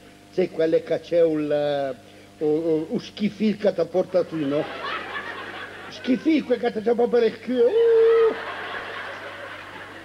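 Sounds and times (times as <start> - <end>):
audience laughing: 4.4 - 6.5, 8.0 - 10.0.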